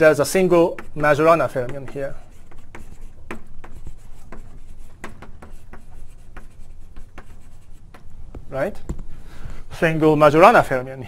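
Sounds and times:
writing taps on a board: 0.6s - 9.1s.

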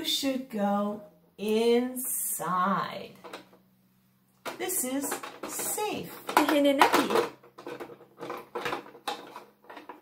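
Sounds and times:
plastic toy clicking and knocking: 3.2s - 3.6s, 4.4s - 10.0s.

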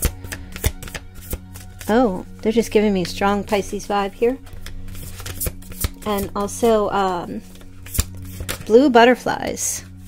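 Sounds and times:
cards being shuffled: 0.0s - 8.8s.

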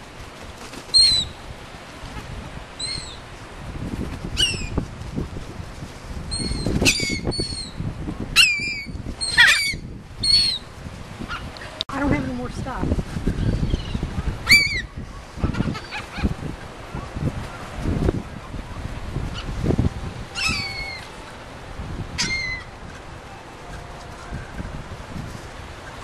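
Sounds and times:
wings flapping: 0.0s - 7.6s, 12.9s - 26.0s
gulls calling: 0.7s - 3.4s, 6.3s - 26.0s.

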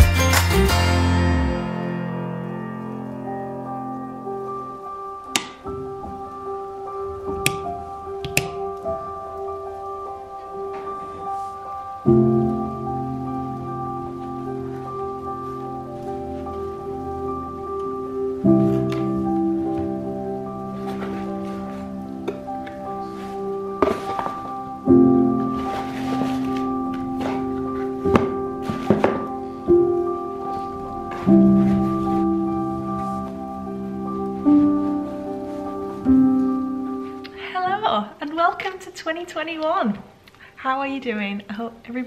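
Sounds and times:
background music: 0.0s - 42.0s.

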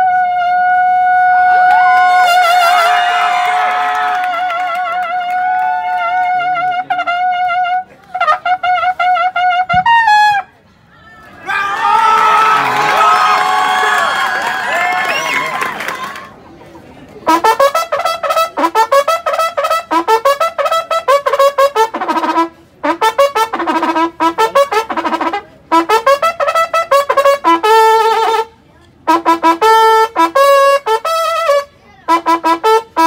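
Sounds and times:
bugle playing: 0.0s - 10.5s, 17.3s - 28.5s, 29.1s - 33.0s
crowd cheering: 1.5s - 6.7s, 10.9s - 16.6s.

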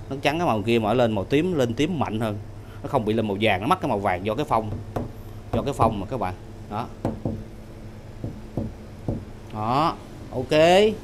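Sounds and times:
short knocks: 4.6s - 6.0s, 7.0s - 7.5s, 8.2s - 9.3s.

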